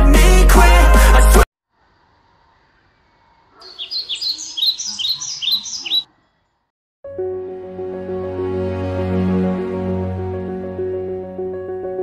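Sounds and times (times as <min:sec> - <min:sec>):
small bird chirping: 0:02.6 - 0:06.7.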